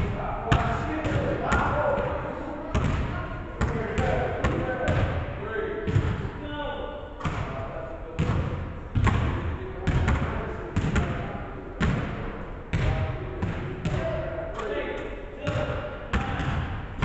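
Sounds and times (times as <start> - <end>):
basketball bouncing on wooden floor: 8.2 - 11.1.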